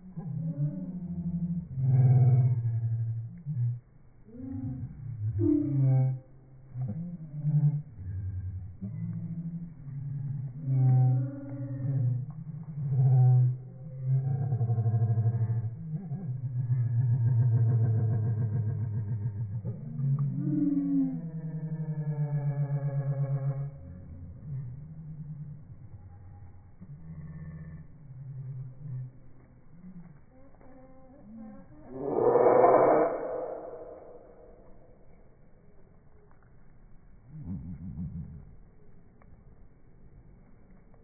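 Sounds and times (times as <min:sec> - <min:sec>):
deep pulsing buzzy drone: 0:00.0 - 0:35.1.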